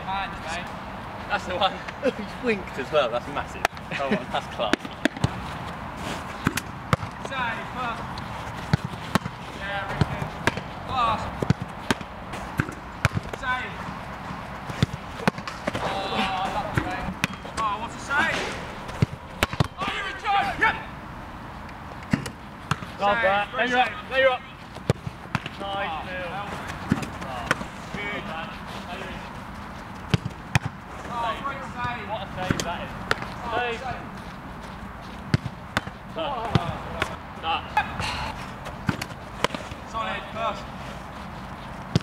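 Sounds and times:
men's voices: 0.0s - 22.1s, 22.8s - 42.0s
football bouncing on turf: 4.6s - 5.4s, 6.4s - 8.0s, 8.6s - 15.9s, 16.6s - 19.9s, 22.1s - 23.0s, 24.7s - 29.1s, 29.9s - 30.8s, 35.2s - 37.2s, 38.6s - 39.7s
ball striking gloves: 4.7s - 5.4s, 6.4s - 7.2s, 8.7s - 10.7s, 11.4s - 13.4s, 14.6s - 15.9s, 16.6s - 17.7s, 18.3s - 19.8s, 22.1s - 22.9s, 24.8s - 25.5s, 30.0s - 30.8s, 32.4s - 33.3s, 35.3s - 37.2s, 38.8s - 39.7s.

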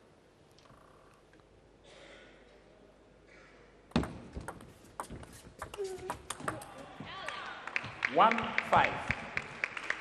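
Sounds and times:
ping pong ball clicking: 3.9s - 6.7s.

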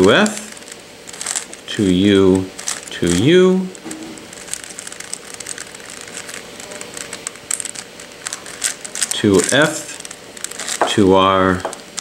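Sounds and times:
plastic puzzle clicking and scraping: 0.0s - 12.0s.

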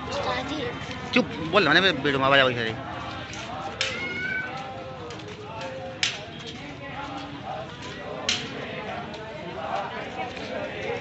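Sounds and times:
murmur of crowd voices: 0.0s - 11.0s.

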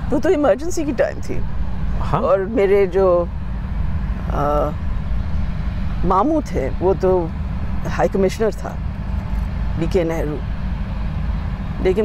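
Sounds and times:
low outdoor rumble: 0.0s - 12.0s
person speaking: 9.8s - 10.4s.

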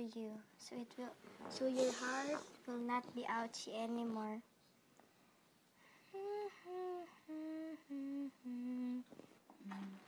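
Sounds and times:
girl humming a tune: 6.1s - 10.0s.

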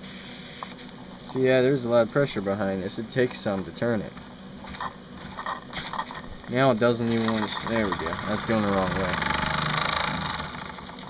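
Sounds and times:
flywheel clicks and scrapes: 7.0s - 11.0s.

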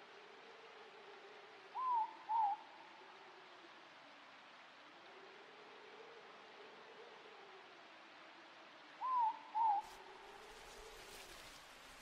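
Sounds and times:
night forest ambience hiss: 0.0s - 12.0s
owl hooting: 1.8s - 2.6s, 9.0s - 9.9s.

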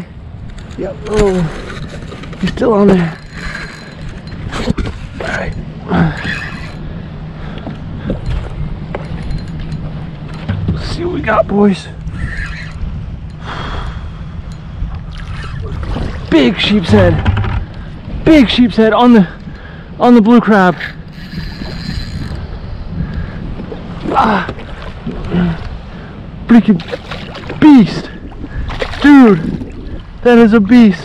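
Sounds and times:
steady low rumble: 0.0s - 26.5s
wind buffeting microphone: 0.0s - 31.0s
fishing reel whirring and clicking: 20.8s - 22.4s.

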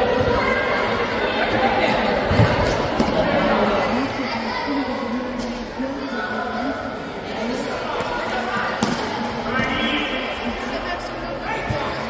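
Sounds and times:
chatter and shouts of people: 0.0s - 12.0s
ball kick echoing in hall: 1.4s - 3.7s, 8.0s - 10.4s.

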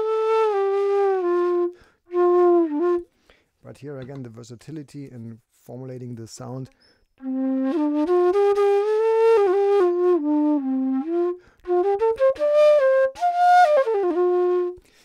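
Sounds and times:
bamboo flute melody: 0.0s - 3.1s, 7.2s - 14.8s.

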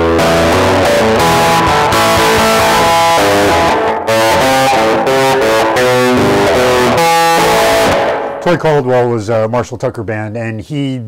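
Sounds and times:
electric guitar fingerpicked: 0.0s - 8.6s.

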